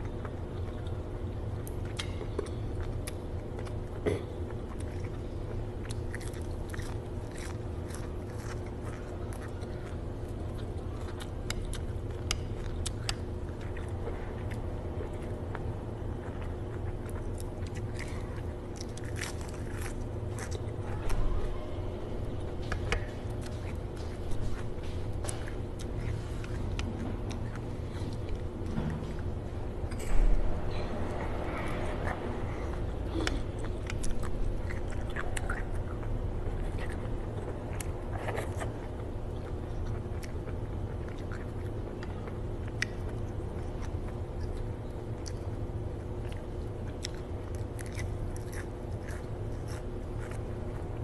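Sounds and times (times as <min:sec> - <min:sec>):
chewing and mouth sounds: 0:00.0 - 0:51.0
steady low hum: 0:00.0 - 0:51.0.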